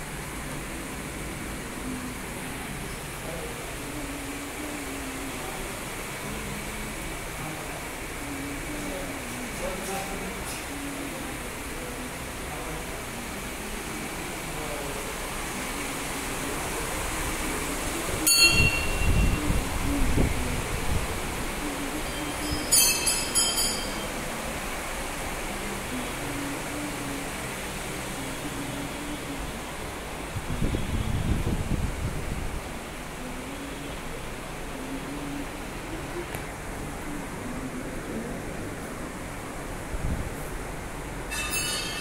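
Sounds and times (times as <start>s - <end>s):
background murmur: 0.0s - 42.0s.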